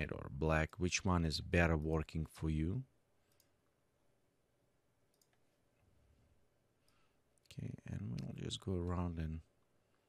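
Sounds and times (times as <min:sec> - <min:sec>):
computer mouse clicks: 0:03.2 - 0:03.6, 0:05.1 - 0:05.5.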